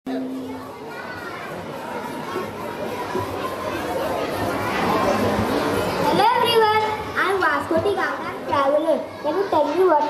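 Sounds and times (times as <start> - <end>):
children chattering: 0.1 - 10.0.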